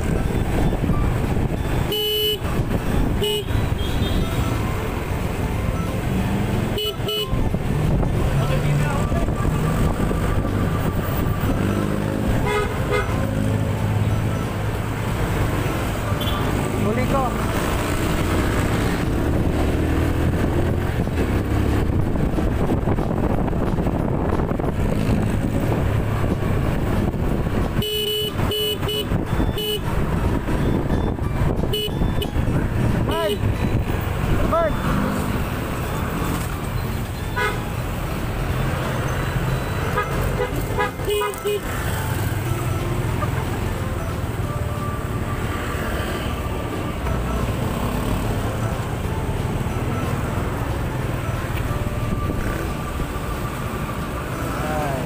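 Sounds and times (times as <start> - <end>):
vehicle horn tooting: 1.8 - 4.5, 6.8 - 7.4, 12.4 - 13.2, 27.8 - 29.9, 31.6 - 32.4, 37.3 - 37.7, 39.8 - 41.7.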